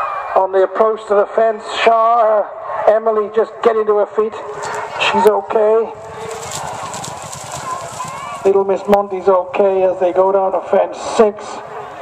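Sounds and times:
background noise rush: 0:00.0 - 0:12.0
horses galloping on grass: 0:04.4 - 0:10.8.

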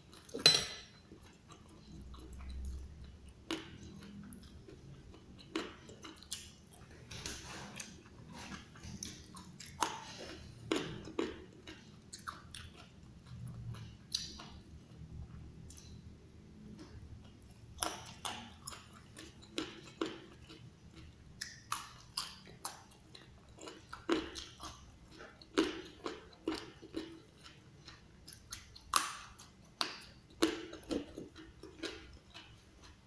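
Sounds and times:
chewing crunchy berries: 0:01.1 - 0:16.0, 0:16.6 - 0:33.0.

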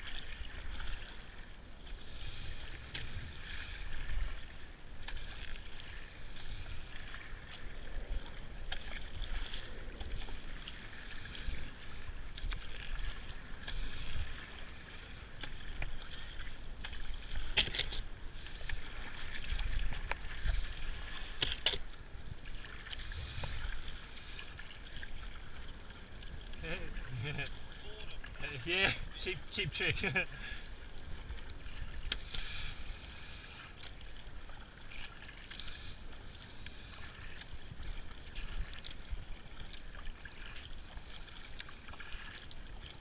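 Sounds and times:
paddle splashing in water: 0:00.0 - 0:43.0
water washing along hull: 0:00.0 - 0:43.0.

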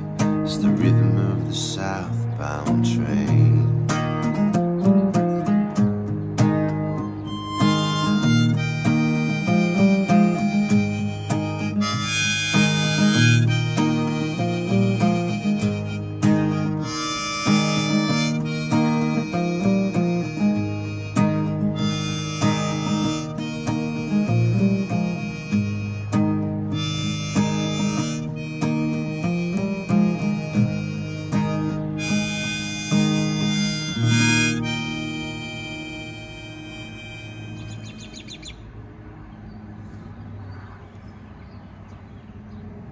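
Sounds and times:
harmonica playing held notes: 0:00.0 - 0:05.0, 0:06.5 - 0:38.5
strummed acoustic guitar: 0:00.0 - 0:38.2.

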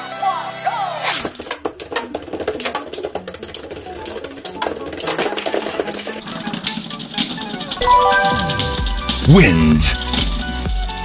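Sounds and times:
music: 0:06.9 - 0:11.0.

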